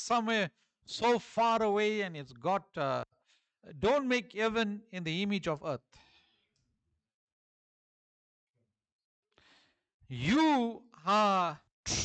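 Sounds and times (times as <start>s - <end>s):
faint breath: 3.2s - 3.6s, 5.9s - 6.6s, 9.3s - 9.9s.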